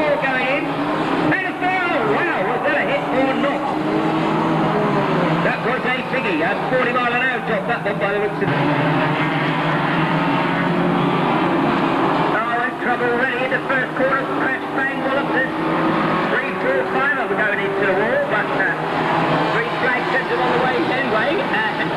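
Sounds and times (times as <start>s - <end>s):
racing car engines: 0.0s - 21.9s.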